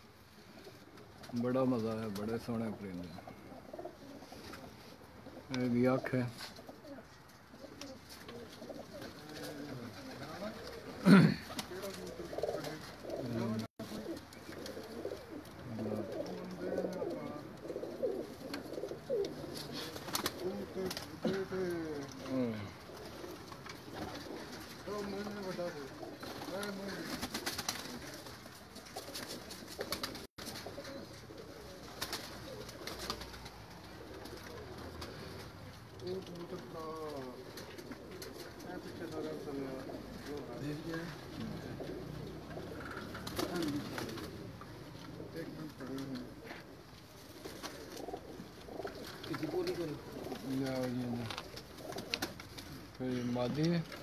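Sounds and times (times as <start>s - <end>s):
pigeons cooing: 0.0s - 54.0s.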